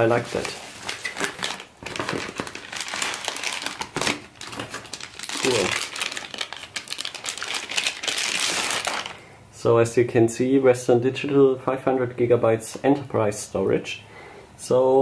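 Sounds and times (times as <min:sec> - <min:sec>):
plastic and bubble wrap crinkling: 0:00.0 - 0:09.2.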